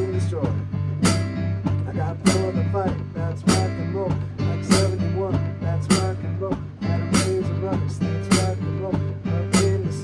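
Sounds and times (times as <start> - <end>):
digital keyboard playing rock and roll: 0.0 - 10.0
low bass line: 0.0 - 10.0
sharp beat hits: 0.0 - 10.0.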